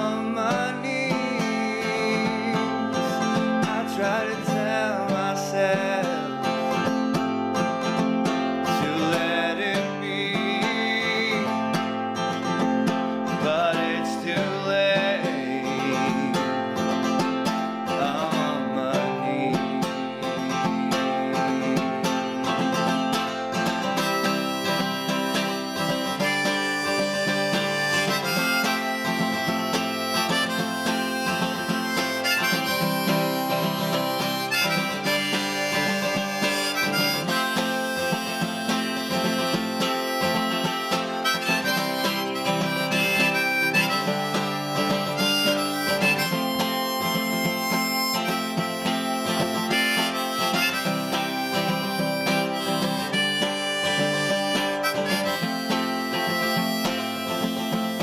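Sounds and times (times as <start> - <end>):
harmonica solo: 0.0 - 58.0
strummed acoustic guitar: 0.0 - 58.0.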